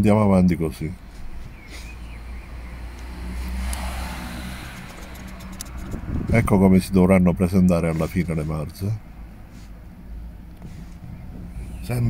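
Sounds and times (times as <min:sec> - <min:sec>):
road vehicle passing: 0:00.9 - 0:12.0.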